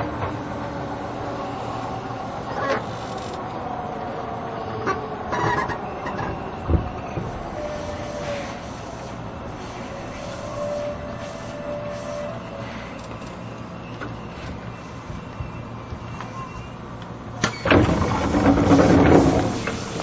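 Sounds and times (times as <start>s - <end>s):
train doors clunk and rush: 0.0s - 3.6s, 4.8s - 20.0s
train running rumble and whine: 0.0s - 20.0s.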